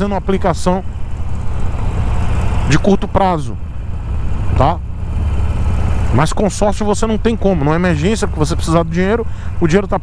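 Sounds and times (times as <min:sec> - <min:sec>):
motorcycle engine low rumble: 0:00.0 - 0:10.0.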